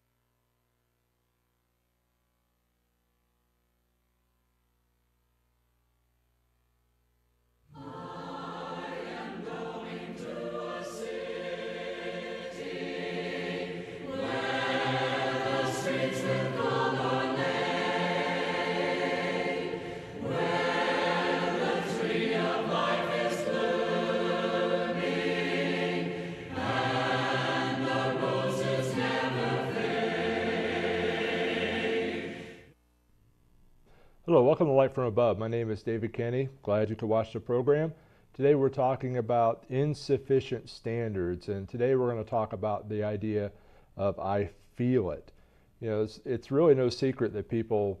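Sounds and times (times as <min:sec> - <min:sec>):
choir singing a hymn: 0:07.7 - 0:32.7.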